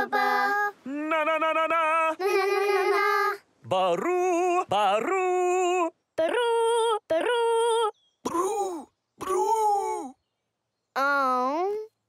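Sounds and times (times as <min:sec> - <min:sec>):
cartoon character singing: 0:00.0 - 0:07.9.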